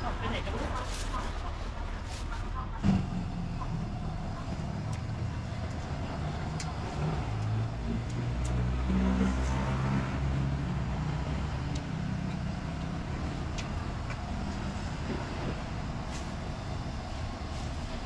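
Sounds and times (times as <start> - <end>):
vehicle engine running: 0.0 - 18.0
faint clicks: 4.9 - 8.6.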